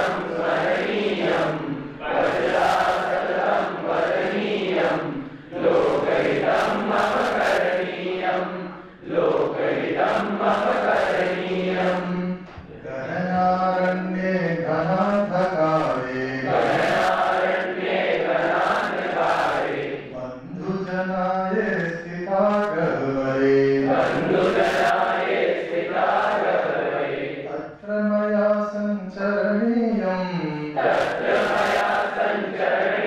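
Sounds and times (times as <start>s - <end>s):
man chanting: 11.7s - 16.9s, 20.1s - 24.4s, 27.5s - 30.8s.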